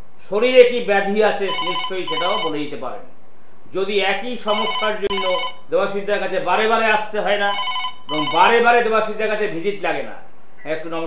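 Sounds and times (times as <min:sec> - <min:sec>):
man talking: 0:00.2 - 0:03.1, 0:03.7 - 0:11.0
telephone ringing: 0:01.5 - 0:02.6, 0:04.5 - 0:05.7, 0:07.5 - 0:08.6.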